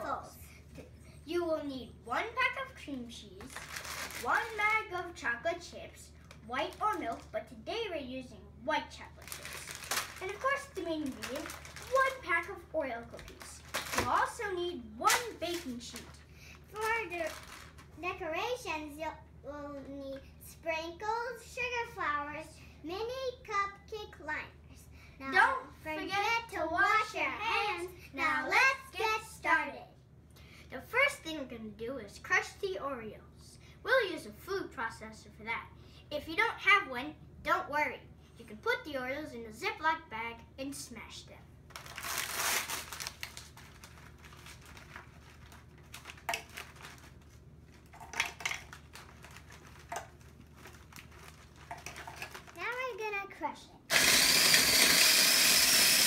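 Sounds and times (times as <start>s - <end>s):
plastic wrapper crinkling: 3.4s - 4.8s, 6.1s - 7.4s, 9.1s - 12.4s, 13.0s - 14.4s, 15.0s - 18.0s, 41.7s - 53.0s.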